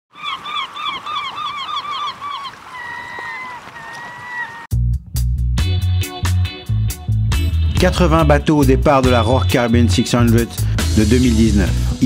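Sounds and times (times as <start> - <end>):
bird calls: 0.1 - 4.7.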